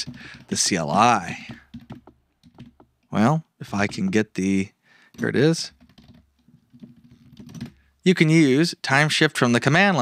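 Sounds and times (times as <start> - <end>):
computer keyboard typing: 0.0 - 8.0.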